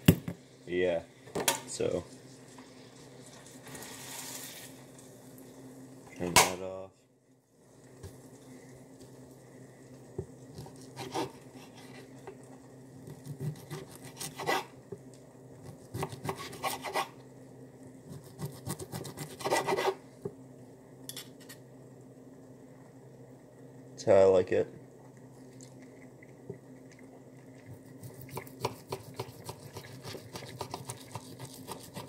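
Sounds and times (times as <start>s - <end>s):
faint low hum: 0.0s - 32.0s
knife scraping on plate: 10.8s - 12.1s, 13.3s - 14.7s, 16.0s - 17.2s, 18.4s - 20.0s.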